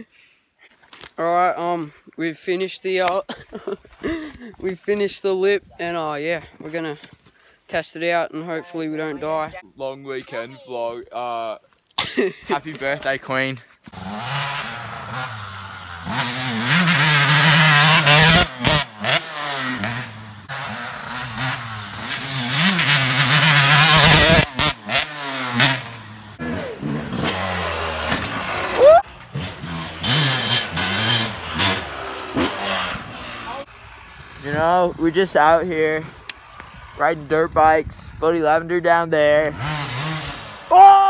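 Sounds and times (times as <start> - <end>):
dirt bike engines revving: 12.2 - 41.0.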